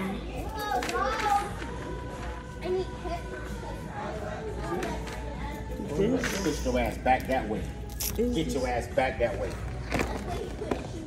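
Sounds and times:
people talking and calling: 0:00.0 - 0:11.0.

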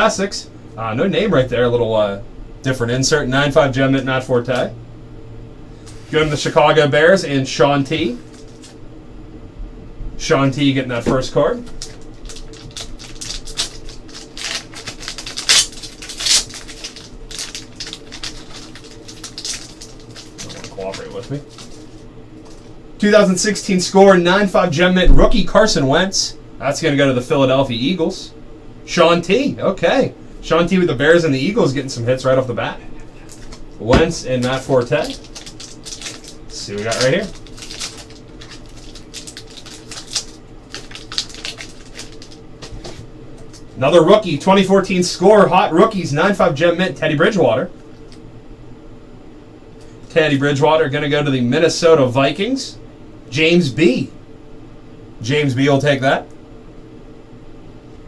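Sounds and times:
low steady hum: 0:00.0 - 0:58.0
foil wrapper crinkling and tearing: 0:11.6 - 0:22.7, 0:33.2 - 0:43.8.

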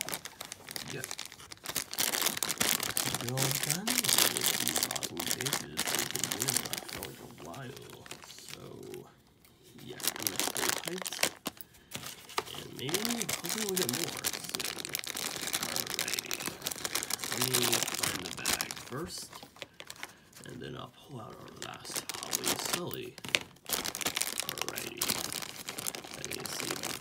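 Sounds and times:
plastic bag crinkling: 0:00.0 - 0:09.1, 0:09.8 - 0:27.0.

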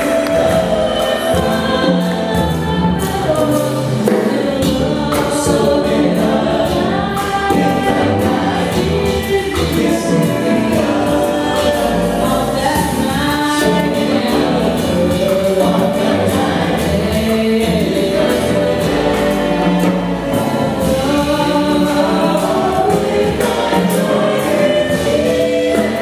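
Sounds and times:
drums: 0:00.0 - 0:26.0
piano: 0:00.0 - 0:26.0
upright bass: 0:00.0 - 0:26.0
vocal jazz group singing: 0:00.0 - 0:26.0.

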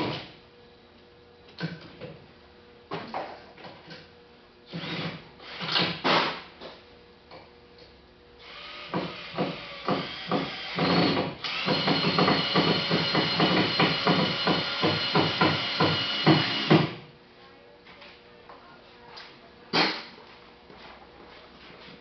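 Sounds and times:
power drill driving a screw: 0:04.7 - 0:06.0, 0:08.4 - 0:16.9.

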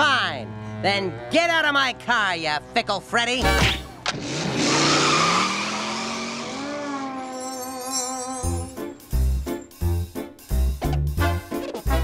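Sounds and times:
music: 0:00.0 - 0:03.9, 0:07.8 - 0:12.0
cartoon tire squeal: 0:03.6 - 0:08.8
engine note rising in pitch: 0:04.2 - 0:08.8.

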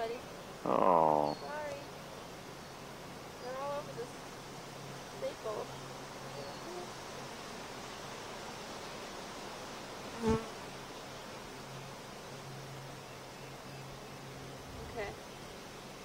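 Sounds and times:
honeybees buzzing: 0:00.0 - 0:16.0.

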